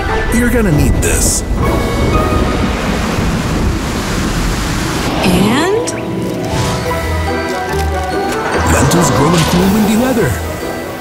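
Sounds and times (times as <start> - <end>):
storm wind whoosh: 0.0 - 6.9
background music: 0.0 - 11.0.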